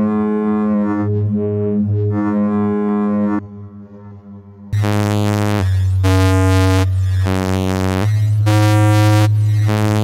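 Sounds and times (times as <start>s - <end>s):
low bass tone: 0.0s - 10.0s
synth sustained notes: 0.0s - 10.0s.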